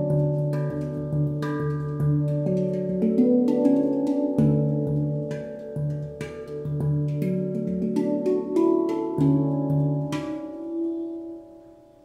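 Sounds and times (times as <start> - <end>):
handpan played with fingers: 0.0 - 12.0.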